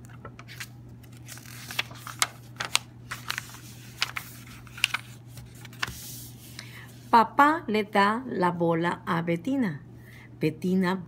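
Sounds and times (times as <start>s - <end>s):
paper page turning: 0.0s - 6.6s.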